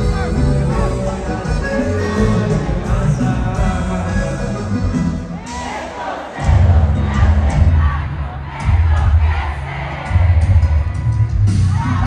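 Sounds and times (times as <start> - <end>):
amplified band music: 0.0 - 12.0
crowd shouting and singing along: 0.0 - 12.0
pulsing heavy bass: 6.4 - 12.0.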